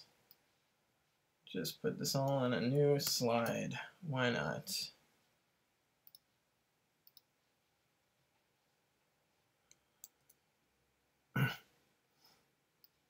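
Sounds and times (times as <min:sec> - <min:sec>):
computer mouse clicks: 0:06.0 - 0:06.3, 0:07.0 - 0:07.3.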